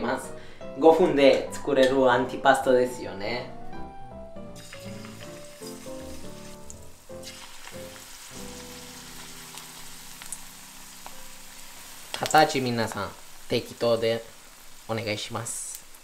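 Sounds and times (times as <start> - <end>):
background music: 0.0 - 13.1
batter sizzling in oil: 4.6 - 16.0.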